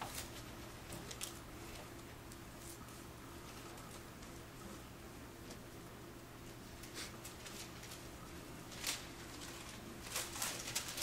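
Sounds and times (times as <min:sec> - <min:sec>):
pages rustling: 0:08.7 - 0:11.0.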